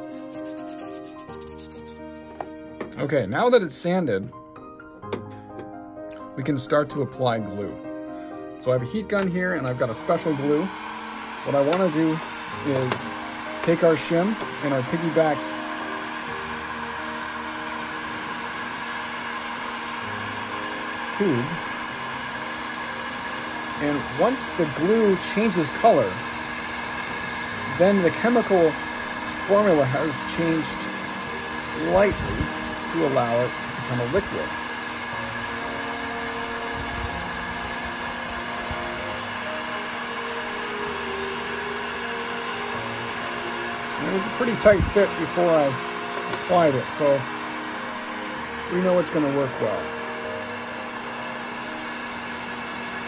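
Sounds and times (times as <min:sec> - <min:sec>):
heat gun fan whirring: 0:00.0 - 0:02.5, 0:08.6 - 0:53.0.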